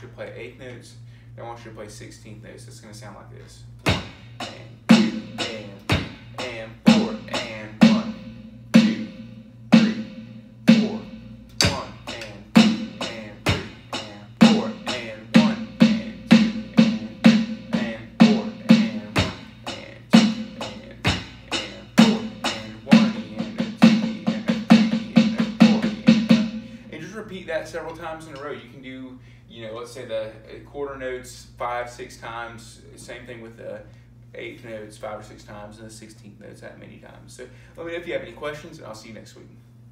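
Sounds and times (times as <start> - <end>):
electronic drum beat: 3.8 - 27.1
snare drum fills: 11.6 - 26.8.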